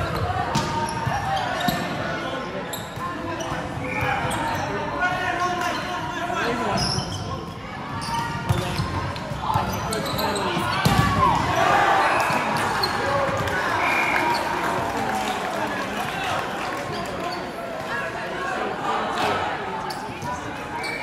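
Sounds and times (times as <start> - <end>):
players calling: 9.4 - 18.1.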